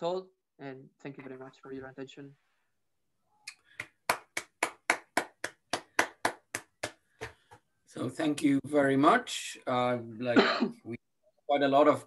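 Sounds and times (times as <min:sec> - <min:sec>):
hand clapping: 0:03.5 - 0:07.7.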